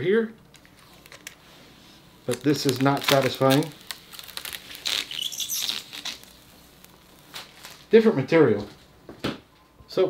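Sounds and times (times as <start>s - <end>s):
plastic film peeling off: 0.4s - 8.0s.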